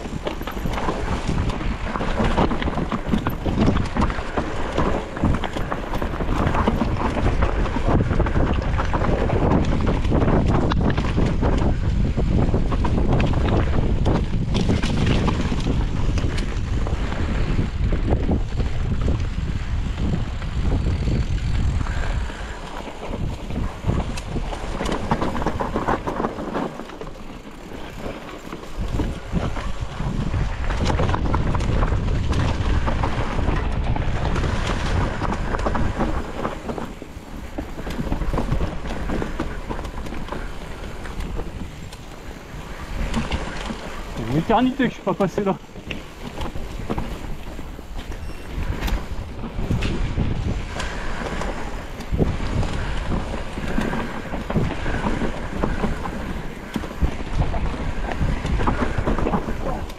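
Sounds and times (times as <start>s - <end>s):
bike rattling over rough ground: 0.0s - 59.9s
wind buffeting microphone: 0.0s - 59.9s.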